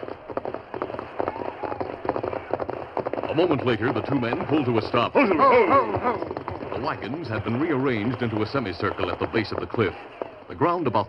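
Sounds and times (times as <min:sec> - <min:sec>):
horse hoofbeats: 0:00.0 - 0:11.0.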